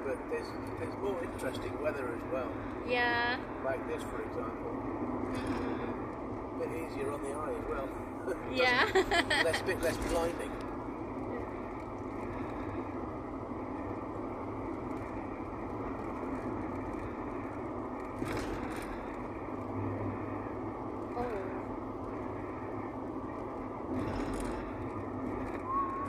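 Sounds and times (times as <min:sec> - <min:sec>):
car cabin road and engine noise: 0:00.0 - 0:26.0.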